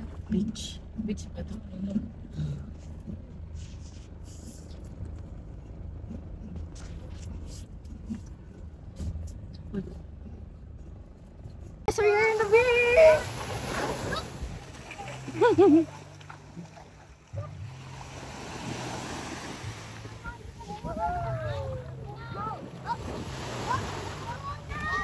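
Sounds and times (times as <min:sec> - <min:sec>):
car driving rumble: 0:00.0 - 0:25.0.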